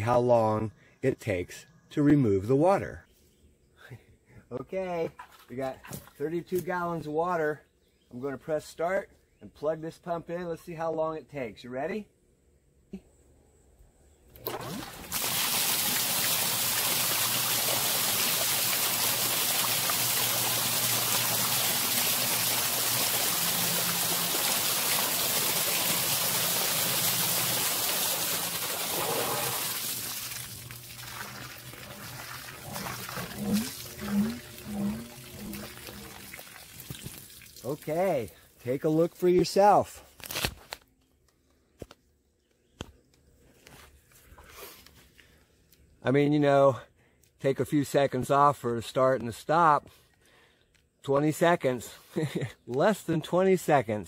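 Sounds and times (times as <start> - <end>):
sump pump running: 14.4 - 37.6
water rushing through pipe: 14.4 - 37.9.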